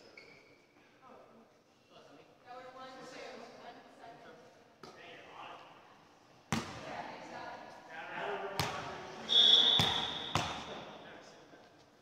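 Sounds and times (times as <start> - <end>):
loud high squeal: 9.3 - 10.4.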